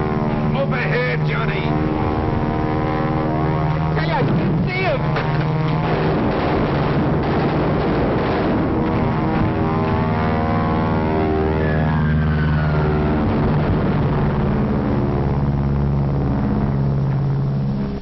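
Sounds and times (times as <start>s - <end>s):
engines droning: 0.0s - 18.0s.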